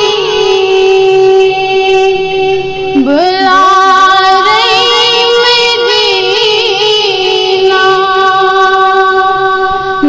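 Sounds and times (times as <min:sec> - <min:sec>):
girl singing into microphone: 0:00.0 - 0:10.0.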